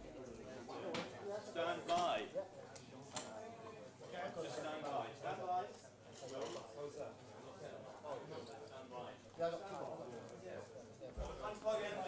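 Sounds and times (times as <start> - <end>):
men talking indistinctly: 0.0 - 12.0.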